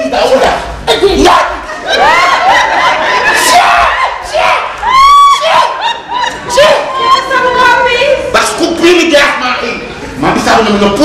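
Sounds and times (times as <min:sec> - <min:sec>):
high-pitched laughing and squealing: 0:04.9 - 0:07.7.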